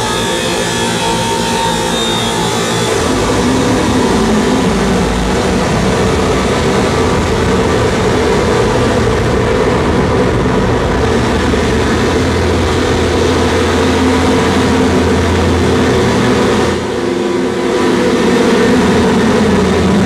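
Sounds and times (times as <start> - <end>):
droning low hum tones: 0.0 - 20.0.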